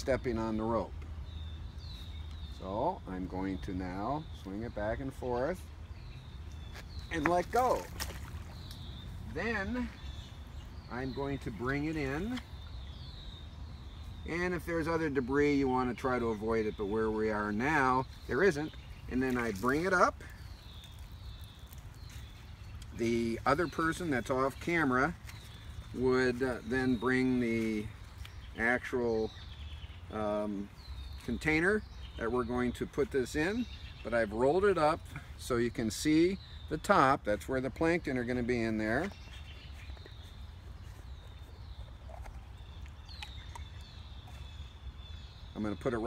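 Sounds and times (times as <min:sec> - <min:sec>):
distant bird calling: 0:00.0 - 0:46.0.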